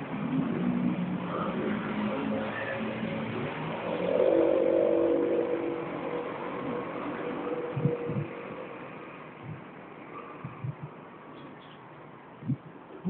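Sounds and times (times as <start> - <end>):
vehicle engine: 0.0 - 11.9.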